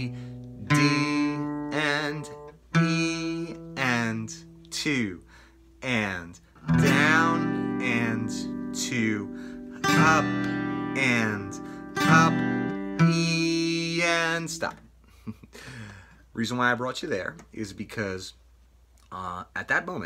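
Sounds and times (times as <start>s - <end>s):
acoustic guitar strumming: 0.0s - 14.8s
man counting: 0.0s - 14.9s, 16.3s - 20.0s.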